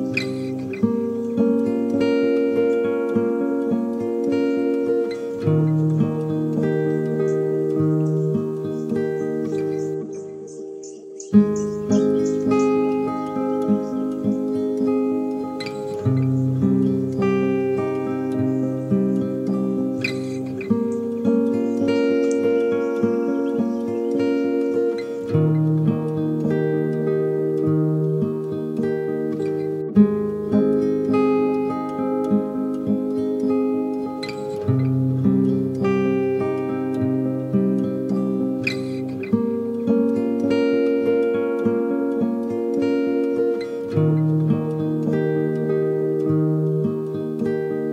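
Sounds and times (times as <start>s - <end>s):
slow guitar music with echo: 0.0s - 47.9s.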